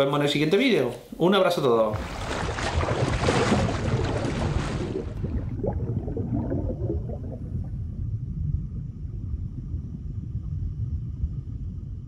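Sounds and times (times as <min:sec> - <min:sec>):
bubbly gurgles: 0:01.9 - 0:11.2
underwater low rumble: 0:02.0 - 0:12.0.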